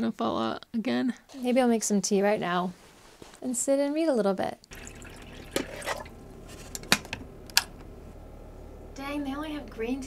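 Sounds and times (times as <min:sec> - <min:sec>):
kettle switch clicking on: 0:06.8 - 0:07.9.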